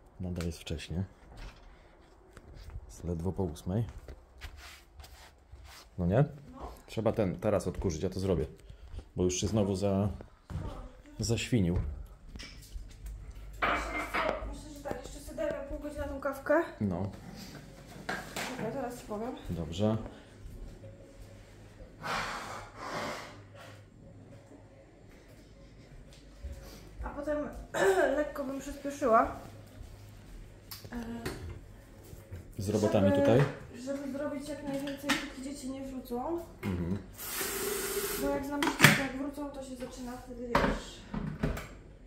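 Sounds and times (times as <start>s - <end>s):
shuffling footsteps on rug: 3.9s - 6.0s.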